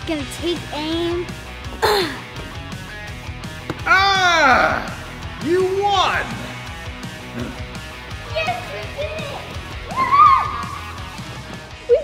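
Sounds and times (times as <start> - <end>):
background music: 0.0 - 12.0
girls squealing: 9.7 - 11.0
girl shrieking: 9.9 - 10.8.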